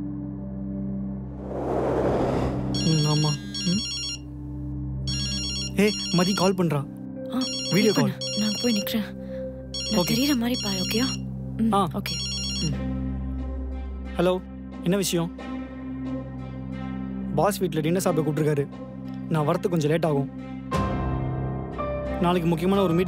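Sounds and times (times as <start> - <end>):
background music: 0.0 - 23.0
whoosh: 1.2 - 3.0
phone ringtone: 2.8 - 4.3, 5.1 - 6.6, 7.3 - 9.1, 9.7 - 11.2, 12.0 - 12.8.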